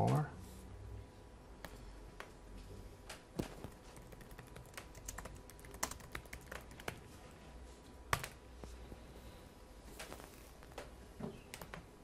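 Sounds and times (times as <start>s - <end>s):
laptop keyboard typing: 3.1s - 7.1s, 8.1s - 8.4s.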